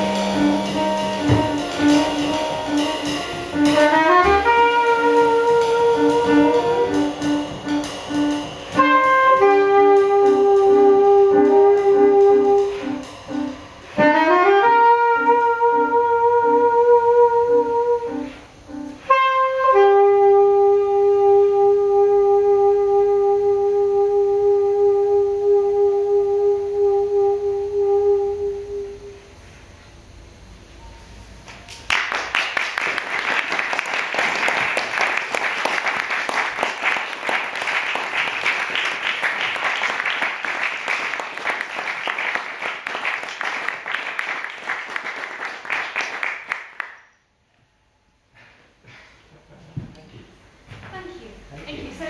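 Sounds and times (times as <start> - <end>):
soprano saxophone long note: 0.0 - 29.4
audience applause: 31.8 - 47.0.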